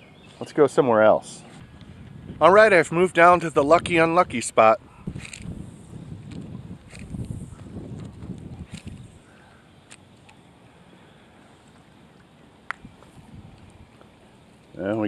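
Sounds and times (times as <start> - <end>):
wind rumbling on microphone: 1.2 - 9.4, 12.7 - 14.0.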